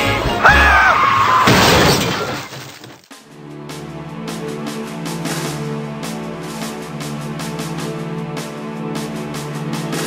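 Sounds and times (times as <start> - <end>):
crash with shattering glass: 1.3 - 3.1.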